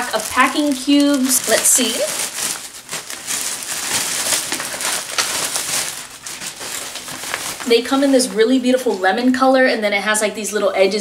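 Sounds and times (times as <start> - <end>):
plastic bag crinkling: 0.0 - 9.2.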